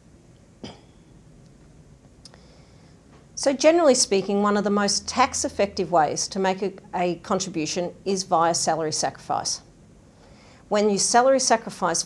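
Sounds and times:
woman clearing throat: 0:00.6 - 0:01.1.

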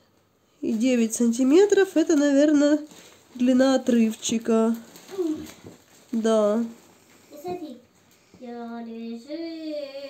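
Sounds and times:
child singing held notes: 0:07.4 - 0:10.0.

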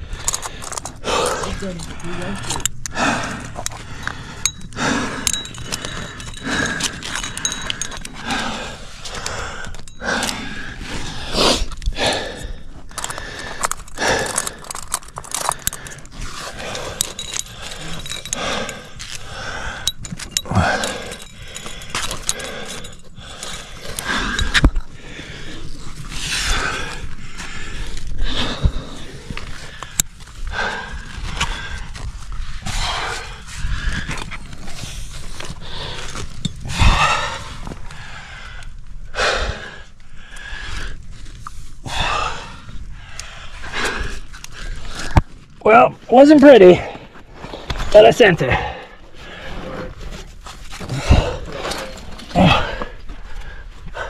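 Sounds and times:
climbing gear clicking: 0:00.0 - 0:10.8, 0:11.7 - 0:39.8
heavy breathing and grunts: 0:00.0 - 0:41.0, 0:41.8 - 0:54.0.

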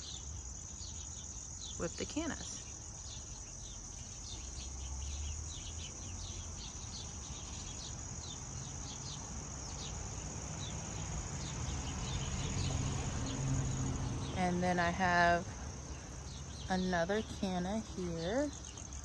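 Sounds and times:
crickets trilling and chirping: 0:00.0 - 0:19.0.

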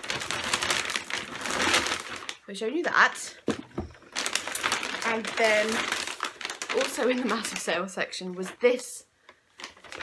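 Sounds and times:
shopping bag rustling: 0:00.0 - 0:07.8, 0:09.6 - 0:10.0.

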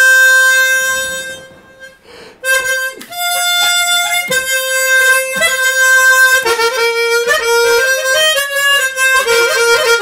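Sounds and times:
harmonica long reedy note: 0:00.0 - 0:10.0.

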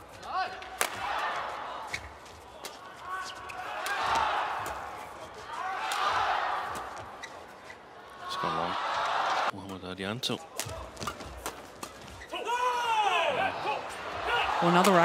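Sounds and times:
arena crowd noise: 0:00.0 - 0:15.0.

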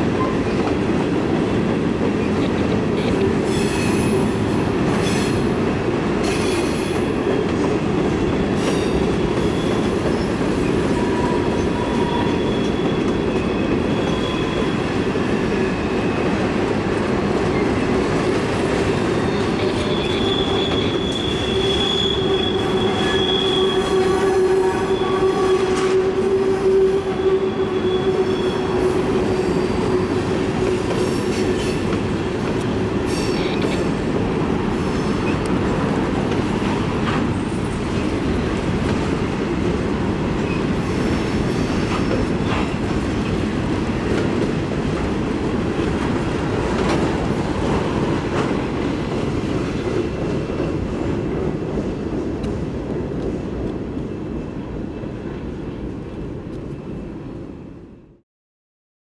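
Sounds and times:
train wheels rumbling on rail: 0:00.0 - 0:58.0
high wheel squeal: 0:08.7 - 0:16.2, 0:19.3 - 0:25.8.

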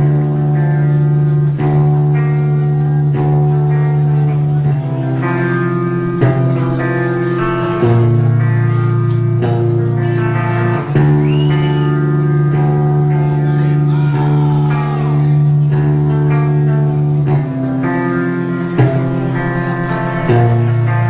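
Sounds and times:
metal band playing live: 0:00.0 - 0:21.0.

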